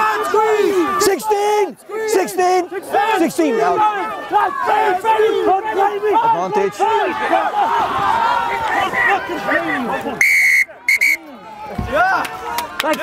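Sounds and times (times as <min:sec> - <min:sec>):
men shouting: 0:00.0 - 0:10.2
referee's whistle blasts: 0:10.2 - 0:11.3.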